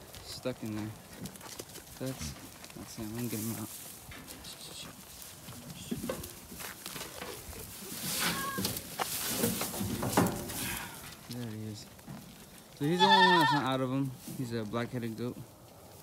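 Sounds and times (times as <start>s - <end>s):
dry hay rustling and crackling: 0.0s - 16.0s
scuffling: 0.0s - 16.0s.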